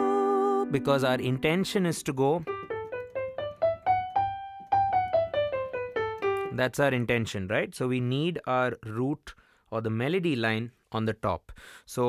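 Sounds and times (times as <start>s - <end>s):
piano playing a scale: 0.0s - 6.6s.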